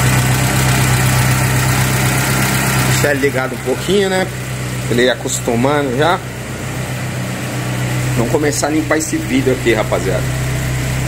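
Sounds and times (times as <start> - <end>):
van engine idling: 0.0 - 11.0.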